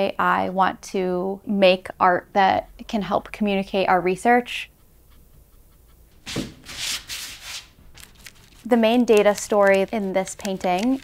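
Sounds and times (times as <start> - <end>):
scratchy strokes on paper: 4.5 - 11.0.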